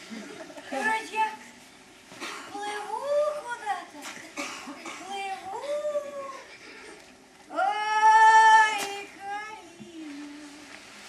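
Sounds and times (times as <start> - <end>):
woman singing unaccompanied: 7.5 - 10.9.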